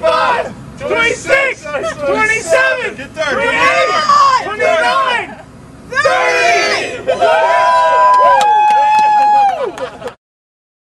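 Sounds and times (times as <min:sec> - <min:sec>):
long drawn-out shouts: 0:00.0 - 0:09.8
young men yelling and cheering: 0:00.0 - 0:10.0.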